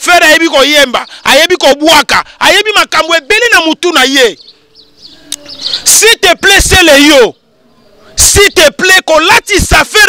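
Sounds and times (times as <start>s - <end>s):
man talking loudly: 0.0s - 4.4s, 5.8s - 7.4s, 8.2s - 10.0s
faint high bird chirps: 4.0s - 6.0s.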